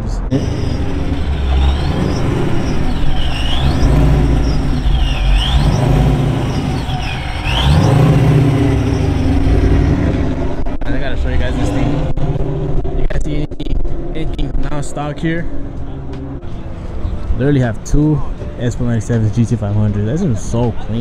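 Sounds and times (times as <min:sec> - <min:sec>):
car engine revving: 0:00.0 - 0:18.4
high engine whine: 0:00.0 - 0:18.5.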